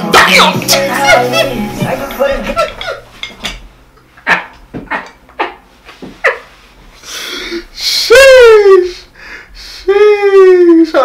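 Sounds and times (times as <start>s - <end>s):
man laughing high-pitched: 0.9s - 3.2s, 7.9s - 9.1s.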